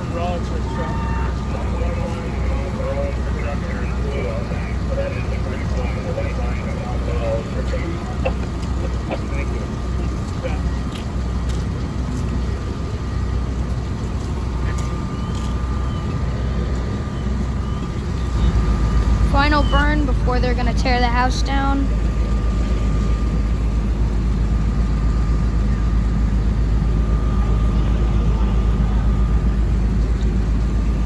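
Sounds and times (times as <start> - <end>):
low engine drone: 0.0 - 31.0.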